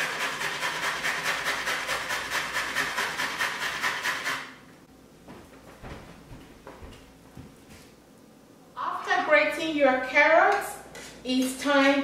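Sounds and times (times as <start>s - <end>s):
carrot grating on metal grater: 0.0s - 4.5s.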